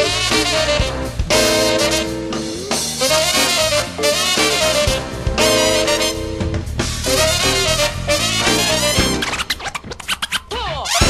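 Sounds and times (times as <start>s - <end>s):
music: 0.0s - 11.0s
turntable scratching: 7.1s - 11.0s.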